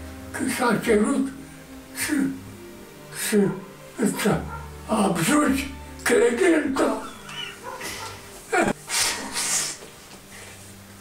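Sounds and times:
elderly man sobbing: 0:06.6 - 0:09.8.

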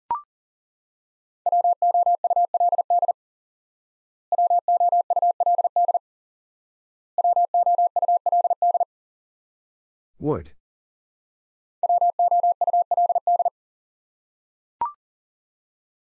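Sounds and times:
morse code beeps: 0:01.5 - 0:03.1, 0:04.3 - 0:06.0, 0:07.2 - 0:08.9, 0:11.8 - 0:13.5.

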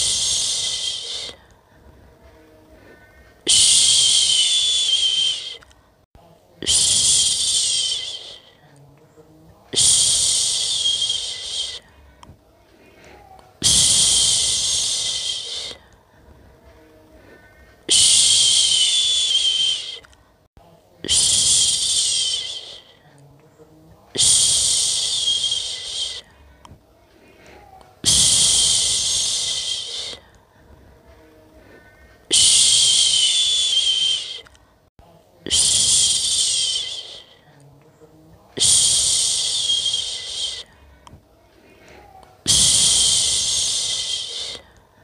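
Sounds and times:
person shushing: 0:00.0 - 0:01.5, 0:02.7 - 0:05.6, 0:06.6 - 0:08.7, 0:09.7 - 0:12.0, 0:12.8 - 0:15.9, 0:17.2 - 0:20.0, 0:21.0 - 0:23.2, 0:24.1 - 0:26.4, 0:27.3 - 0:30.3, 0:31.1 - 0:34.5, 0:35.4 - 0:37.5, 0:38.6 - 0:40.7, 0:41.7 - 0:44.8.

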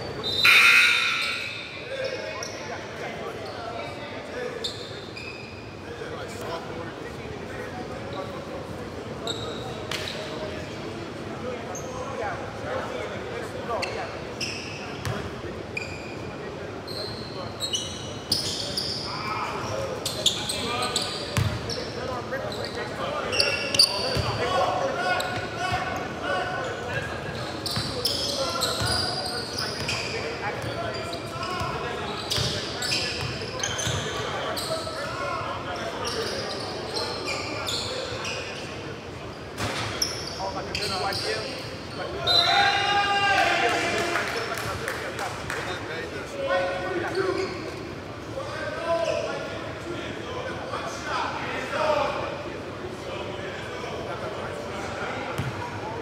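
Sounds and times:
players calling out: 0:00.1 - 0:02.6.

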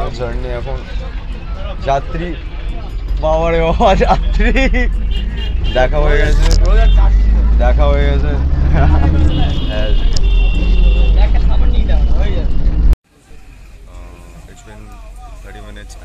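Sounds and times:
people's voices: 0:00.0 - 0:16.0
vehicle rumble from inside: 0:00.0 - 0:16.0.

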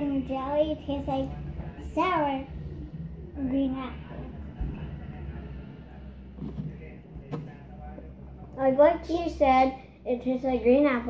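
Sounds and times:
low room hum: 0:00.0 - 0:11.0
soft murmur: 0:00.8 - 0:08.6.

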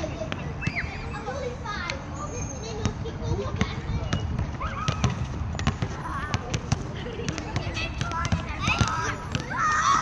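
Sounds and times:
basketball bouncing on asphalt: 0:00.0 - 0:01.0, 0:02.7 - 0:10.0
children calling out and chattering: 0:00.0 - 0:10.0.

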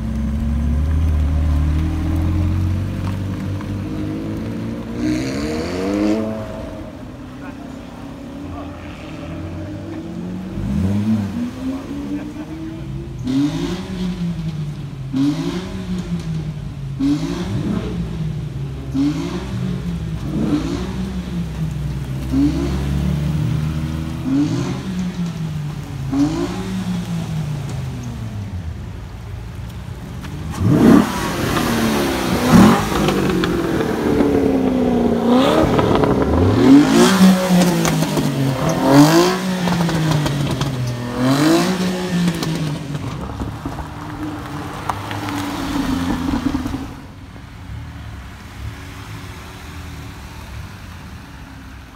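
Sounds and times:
sports car engine revving: 0:00.0 - 0:28.6, 0:30.4 - 0:47.1.

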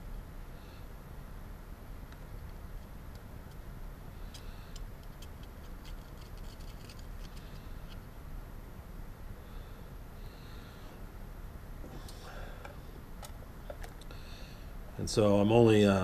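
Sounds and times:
steady low hum: 0:00.0 - 0:16.0
solder joint crackling and ticking: 0:02.0 - 0:08.1.

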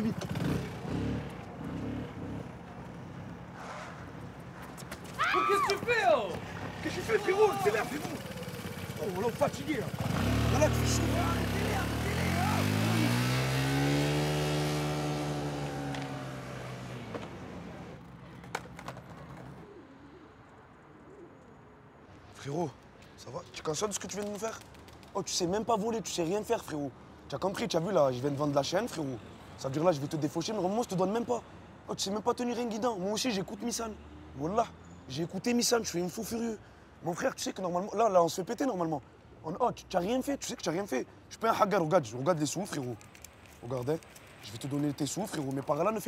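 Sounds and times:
city ambience: 0:00.0 - 0:46.0
motor scooter engine running: 0:07.6 - 0:16.4
pigeons cooing: 0:19.4 - 0:21.7.

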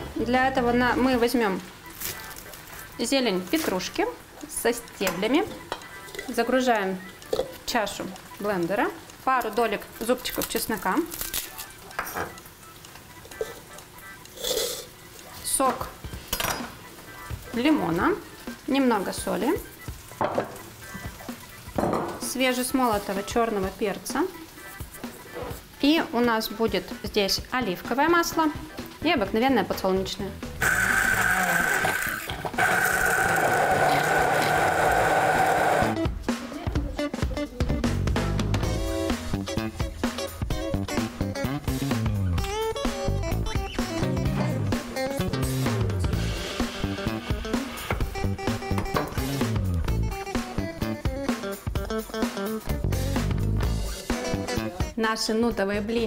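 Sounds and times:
faint background music: 0:00.0 - 0:56.0
hand blender motor whine: 0:30.6 - 0:36.0
guitar music: 0:38.7 - 0:54.9.

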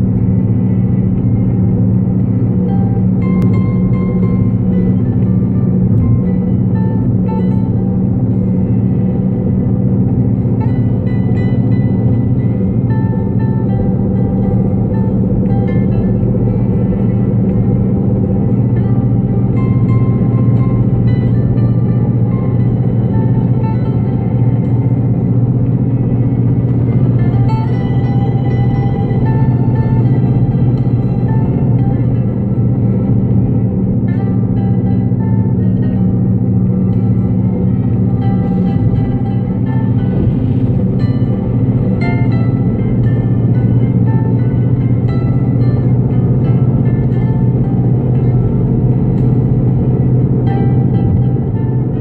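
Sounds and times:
car driving rumble inside cabin: 0:00.0 - 0:52.0
quiet music sparse notes: 0:00.0 - 0:52.0.

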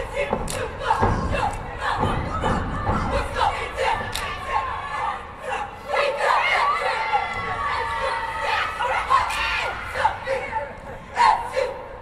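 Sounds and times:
cheerleaders shouting a cheer: 0:00.0 - 0:12.0
crowd noise: 0:00.0 - 0:12.0.

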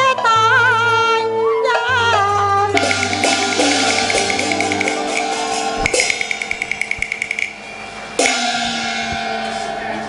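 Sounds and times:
rapid sharp clacks: 0:02.8 - 0:07.6
gong strike ringing: 0:02.8 - 0:10.0.

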